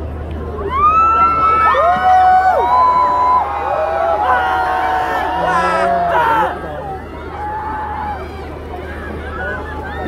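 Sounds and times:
low crowd murmur: 0:00.0 - 0:10.0
crowd screaming and cheering: 0:00.6 - 0:10.0.

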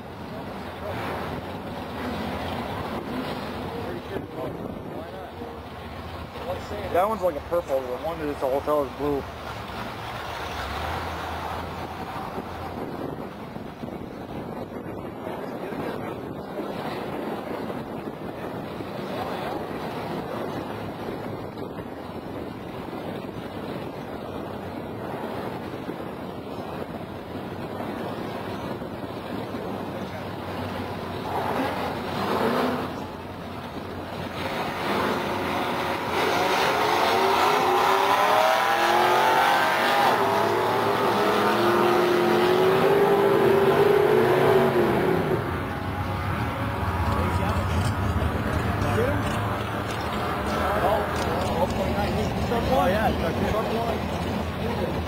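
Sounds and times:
engines at full throttle shifting gears: 0:00.0 - 0:55.0
engine revving: 0:31.2 - 0:33.2, 0:34.1 - 0:55.0
engines idling: 0:39.3 - 0:55.0.

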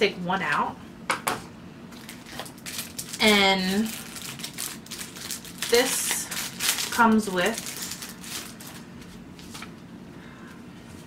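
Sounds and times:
paper packaging rustling: 0:02.0 - 0:09.8.

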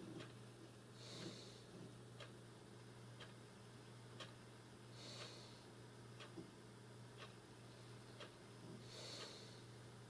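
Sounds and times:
faint clock ticking: 0:00.0 - 0:10.0
low steady hum: 0:00.0 - 0:10.0.

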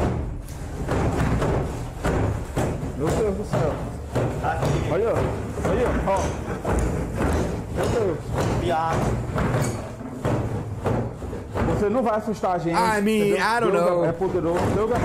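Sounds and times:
wooden drawers banging: 0:00.0 - 0:15.0
men talking excitedly: 0:03.0 - 0:06.8, 0:11.6 - 0:15.0.

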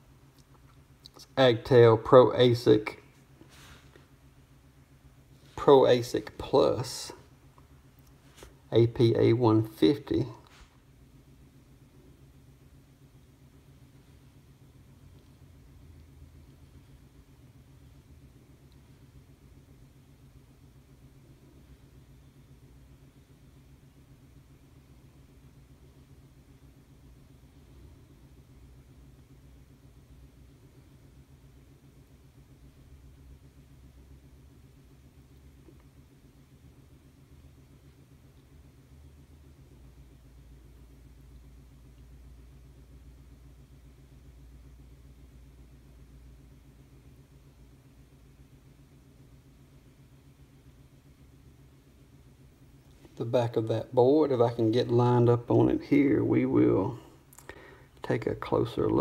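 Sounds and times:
faint low hum with hiss: 0:00.0 - 0:59.0.

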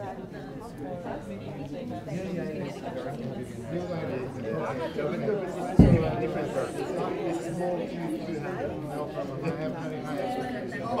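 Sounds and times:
overlapping voices chattering: 0:00.0 - 0:11.0
low thump: 0:05.8 - 0:06.6.

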